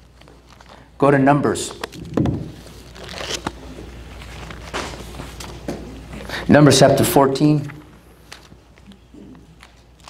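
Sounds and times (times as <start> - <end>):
book pages rustling: 0.0 - 0.8, 1.6 - 5.9, 7.7 - 10.0.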